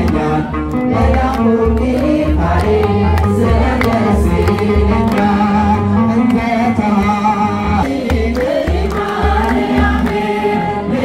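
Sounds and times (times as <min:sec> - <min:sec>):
deep beat: 0:01.0 - 0:11.0
man singing a hymn through pa: 0:03.4 - 0:08.9.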